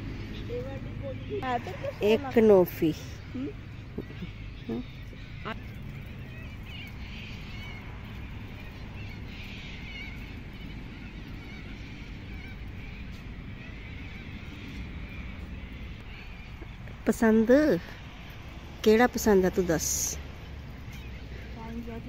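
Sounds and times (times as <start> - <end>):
bird chirps: 0.2 - 22.0.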